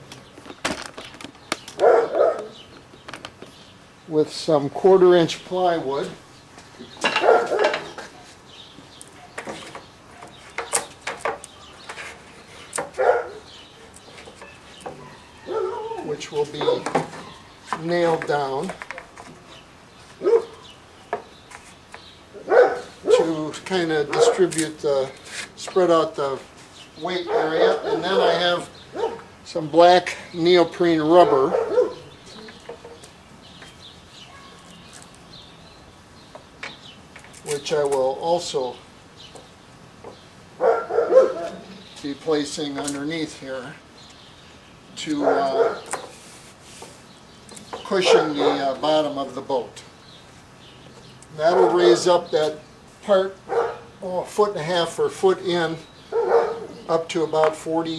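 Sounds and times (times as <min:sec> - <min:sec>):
dog barking: 0:01.8 - 0:02.6, 0:07.2 - 0:07.8, 0:13.0 - 0:13.4, 0:15.0 - 0:16.0, 0:20.2 - 0:20.6, 0:22.4 - 0:23.3, 0:27.3 - 0:29.2, 0:31.2 - 0:32.1, 0:40.6 - 0:41.6, 0:45.2 - 0:45.9, 0:48.0 - 0:48.8, 0:51.5 - 0:52.0, 0:53.5 - 0:53.9, 0:56.1 - 0:56.8.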